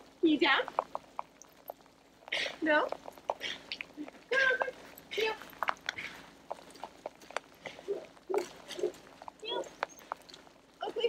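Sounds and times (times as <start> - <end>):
footsteps crunching on snow: 2.6 - 11.0.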